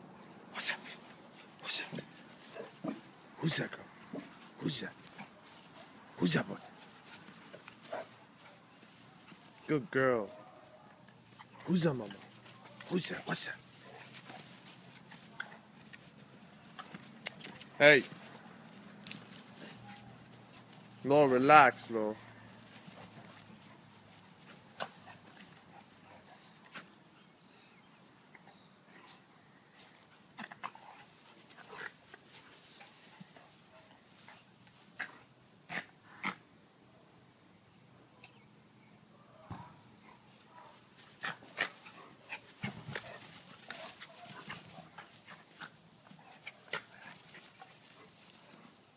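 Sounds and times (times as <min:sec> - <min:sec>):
dogs scuffling on grass: 0:00.6 - 0:27.2, 0:29.0 - 0:35.4, 0:40.0 - 0:48.9.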